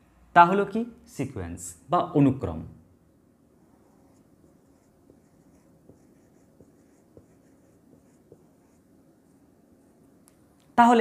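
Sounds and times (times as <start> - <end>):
marker pen writing on whiteboard: 3.6 - 10.1
marker tip tapping board: 4.8 - 8.8.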